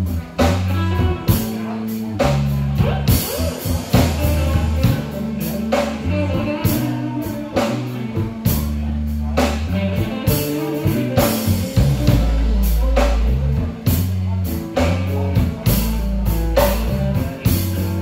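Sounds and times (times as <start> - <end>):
drum kit beat: 0.0 - 18.0
electric bass: 0.0 - 18.0
electric guitar: 0.0 - 18.0.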